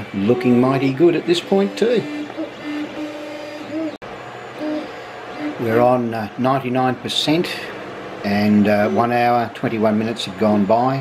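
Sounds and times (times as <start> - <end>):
cooling fans hissing: 0.0 - 11.0
stepper motors whining: 0.0 - 11.0.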